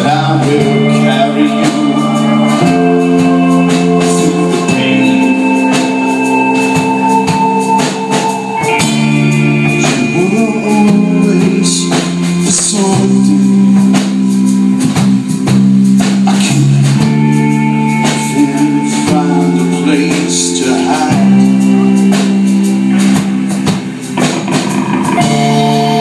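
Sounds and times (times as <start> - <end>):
drums and cymbals: 0.0 - 26.0
electric guitars sustained chords: 0.0 - 26.0.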